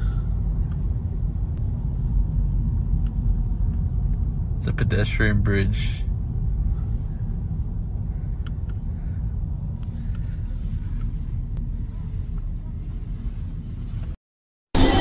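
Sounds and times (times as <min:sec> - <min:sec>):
car road and engine rumble: 0:00.0 - 0:14.2.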